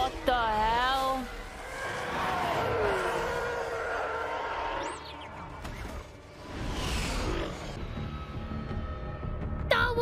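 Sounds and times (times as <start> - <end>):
starfighter engines roaring: 0.0 - 9.3.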